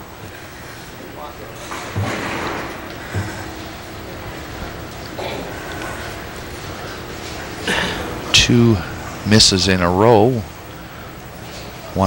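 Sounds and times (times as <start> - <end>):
low crowd murmur: 0.0 - 9.3
lane machinery clattering rumble: 0.0 - 12.0.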